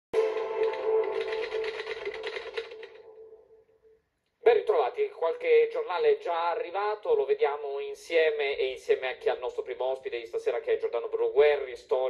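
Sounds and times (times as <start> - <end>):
theme tune held note on tv: 0.1 - 3.6.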